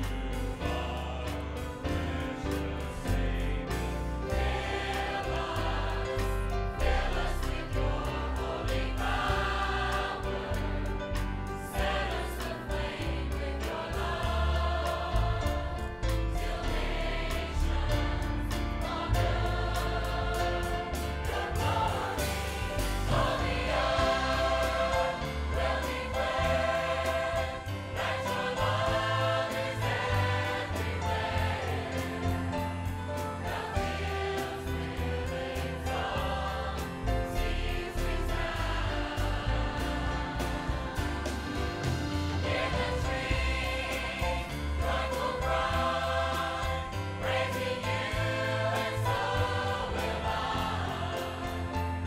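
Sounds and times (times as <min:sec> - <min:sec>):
choir singing gospel song: 0:00.0 - 0:52.0
instrumental accompaniment with beat: 0:00.0 - 0:52.0.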